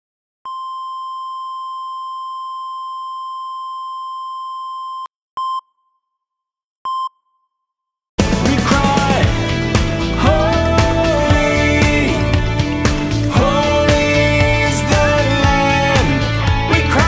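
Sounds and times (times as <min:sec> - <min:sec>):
heart monitor short beeps: 0:00.5 - 0:05.9, 0:06.9 - 0:07.4
heart monitor flatline tone: 0:00.5 - 0:06.0.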